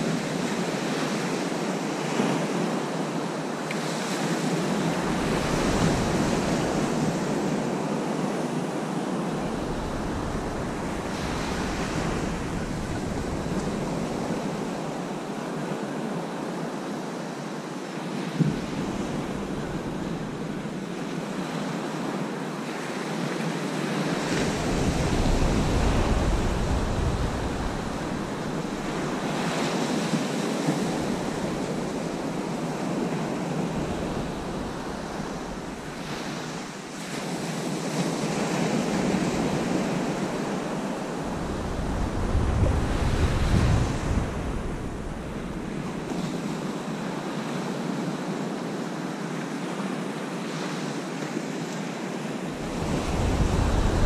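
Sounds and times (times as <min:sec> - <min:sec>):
waves breaking on sandy beach: 0:00.0 - 0:54.0
wind buffeting microphone: 0:09.1 - 0:15.3, 0:18.4 - 0:21.5, 0:24.0 - 0:36.8, 0:37.9 - 0:46.6, 0:52.5 - 0:54.0.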